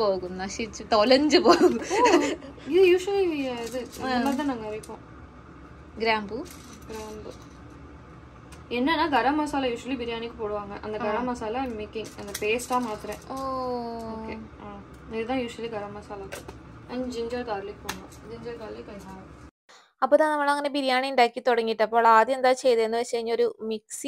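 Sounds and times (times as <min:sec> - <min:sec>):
people talking: 0:00.0 - 0:05.0, 0:06.0 - 0:07.4, 0:08.7 - 0:19.3, 0:20.0 - 0:24.0.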